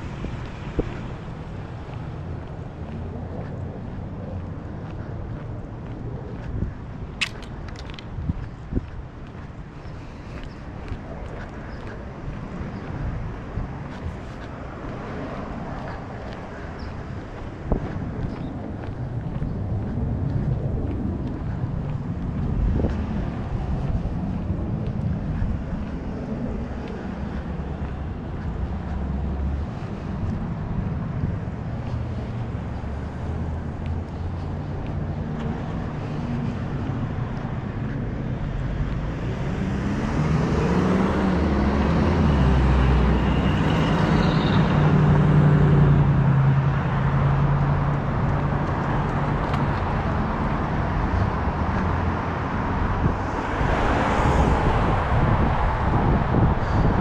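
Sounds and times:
cars passing on street: 0.0s - 57.0s.

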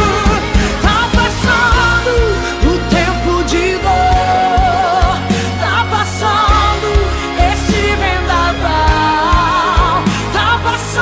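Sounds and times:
bass: 0.0s - 11.0s
woman singing with vibrato: 0.0s - 11.0s.

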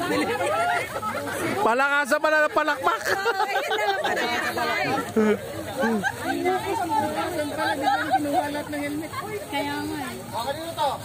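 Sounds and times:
overlapping chatter of people: 0.0s - 11.0s.

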